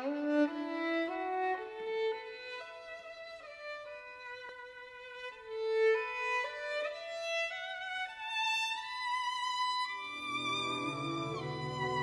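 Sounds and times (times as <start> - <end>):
violin slow melody: 0.0 - 12.0.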